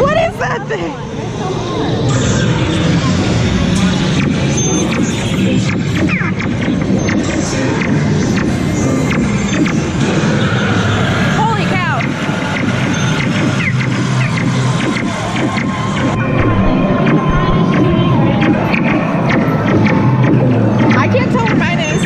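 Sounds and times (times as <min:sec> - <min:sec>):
ride soundtrack music and voices: 0:00.0 - 0:22.0.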